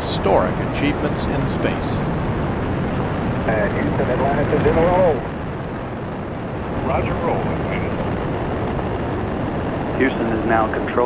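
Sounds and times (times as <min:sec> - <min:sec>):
rocket launch rumble: 0:00.0 - 0:11.0.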